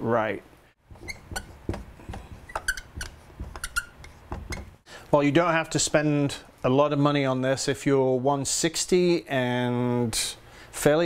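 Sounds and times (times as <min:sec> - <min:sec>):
marker squeaks: 0:00.9 - 0:04.8
marker writing on whiteboard: 0:00.9 - 0:04.8.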